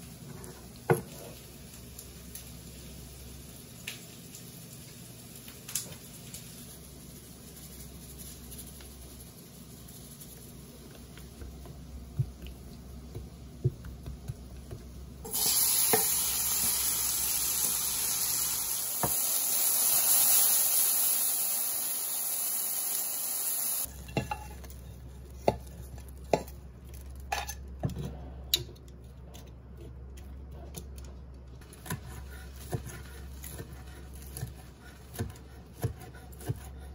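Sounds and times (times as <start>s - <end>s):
chicken sizzling in a frying pan: 0.7s - 10.8s, 15.2s - 24.4s
knife scraping on cutting board: 31.8s - 36.9s.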